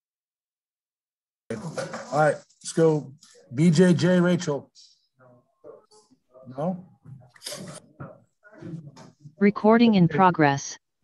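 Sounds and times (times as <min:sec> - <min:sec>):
broken speech over video call: 0:01.5 - 0:10.9.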